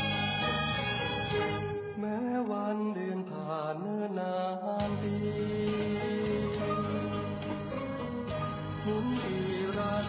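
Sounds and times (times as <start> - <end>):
backing music with bass: 0.0 - 2.2, 4.8 - 10.0.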